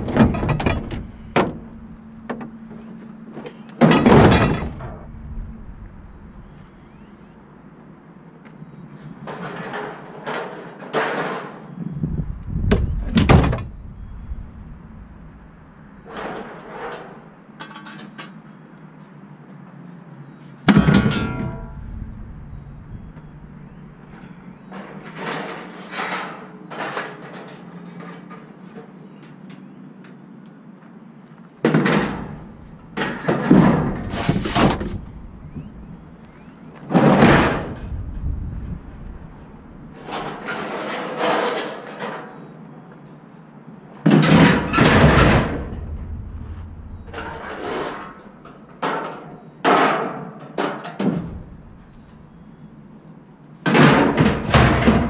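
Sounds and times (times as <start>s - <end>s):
scrap metal clattering and thudding: 0.0s - 3.0s, 3.8s - 6.7s, 20.7s - 28.4s, 31.7s - 36.1s, 36.8s - 42.3s, 44.0s - 52.3s, 53.7s - 55.0s.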